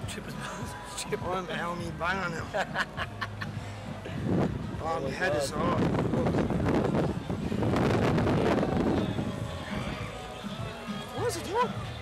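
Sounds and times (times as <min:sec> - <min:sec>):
faint background music: 0:00.0 - 0:12.0
wind buffeting microphone: 0:03.9 - 0:11.9.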